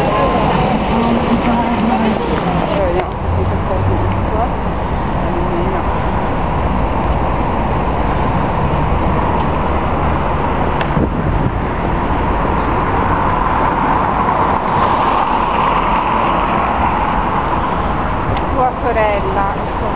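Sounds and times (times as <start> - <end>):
road traffic noise: 0.0 - 19.9.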